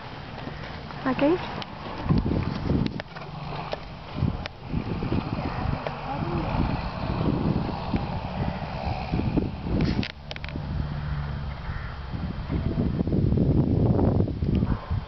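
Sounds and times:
horses trotting on sand: 0.0s - 10.0s
wind buffeting microphone: 0.0s - 15.0s
indistinct voices: 3.4s - 9.8s.

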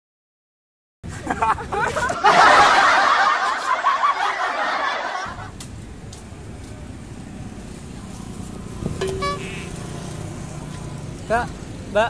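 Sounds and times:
road traffic rumble: 5.2s - 12.0s
car horn toot: 9.0s - 9.8s.

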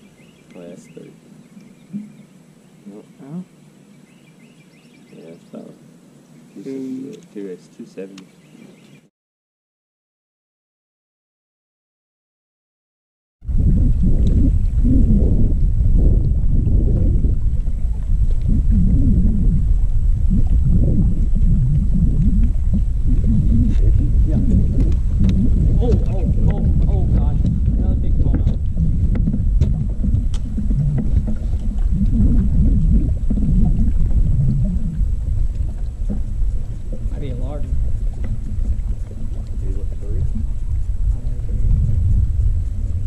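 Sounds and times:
wind buffeting microphone: 13.4s - 43.0s.

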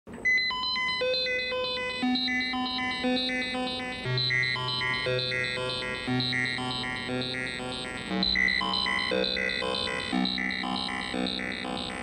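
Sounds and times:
electronic beeping tones: 0.3s - 12.0s.

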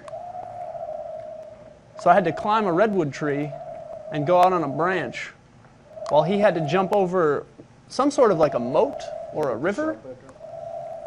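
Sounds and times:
steady humming tone: 0.0s - 11.0s.

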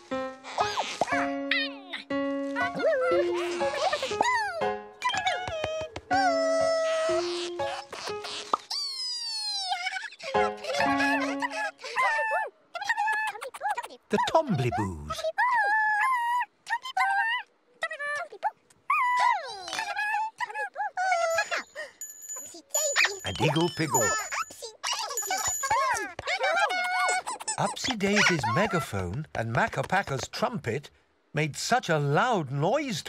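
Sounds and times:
gentle children's music: 0.0s - 12.5s, 21.0s - 29.1s
cartoon character voices: 9.3s - 18.4s, 22.8s - 26.0s.

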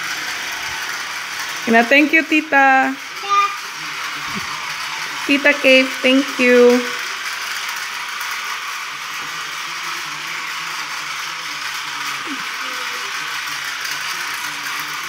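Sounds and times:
toy train motor whirring: 0.0s - 15.0s.

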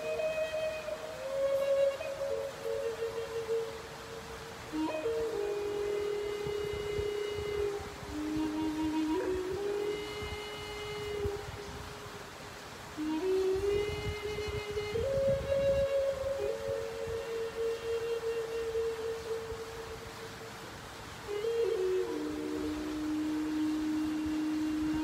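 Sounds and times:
flute slow melody: 0.0s - 25.0s.

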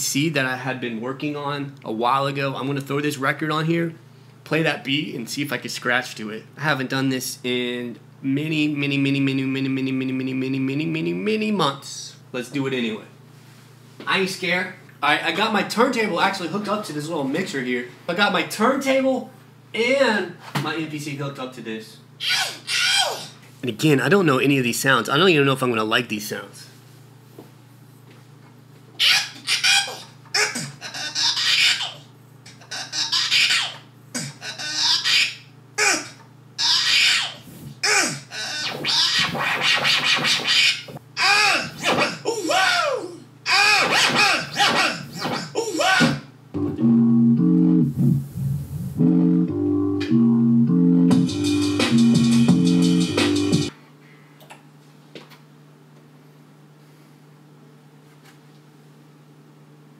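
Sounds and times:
record scratching: 29.0s - 35.1s, 36.6s - 41.0s, 41.6s - 42.2s, 43.7s - 45.6s, 47.9s - 49.1s
choppy vocal and effect snippets: 29.0s - 46.3s
stepping electronic melody: 46.6s - 53.7s.

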